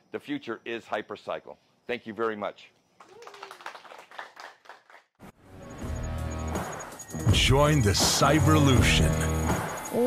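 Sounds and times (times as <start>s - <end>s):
audience applauding: 3.0s - 5.1s.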